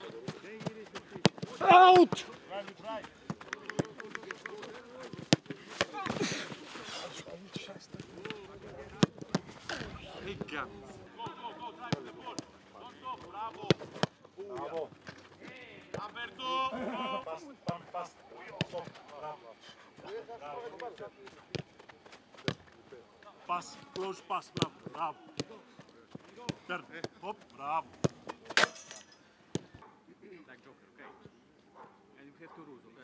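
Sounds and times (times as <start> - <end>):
people shouting: 1.5 - 2.3
boot kicking football: 4.6 - 6.6.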